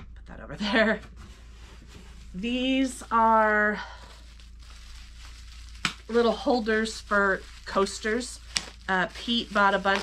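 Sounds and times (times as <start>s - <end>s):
plastic wrap crinkling: 1.1s - 10.0s.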